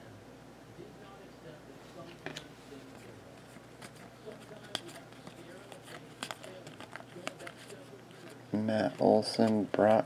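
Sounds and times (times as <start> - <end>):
cards rustling: 2.1 - 10.0.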